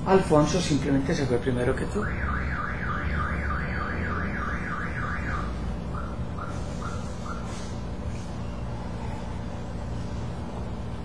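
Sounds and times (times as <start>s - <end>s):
car alarm siren: 1.9s - 7.7s.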